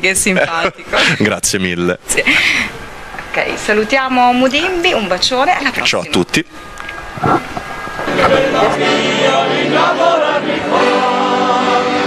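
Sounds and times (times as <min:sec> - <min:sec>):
accordion: 0:07.2 - 0:12.0
men's choir singing: 0:08.0 - 0:12.0.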